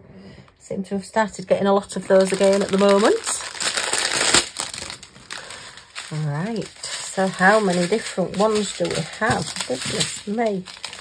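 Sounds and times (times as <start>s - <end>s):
plastic packet crinkling: 1.8s - 11.0s.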